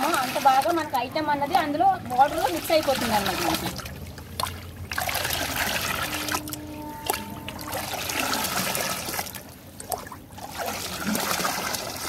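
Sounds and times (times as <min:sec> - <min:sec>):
liquid pouring and splashing into tub: 0:00.0 - 0:12.0.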